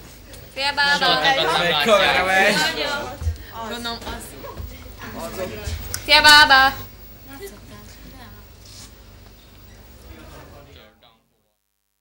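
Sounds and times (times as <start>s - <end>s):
faint chatter of teenagers: 0.2s - 11.6s.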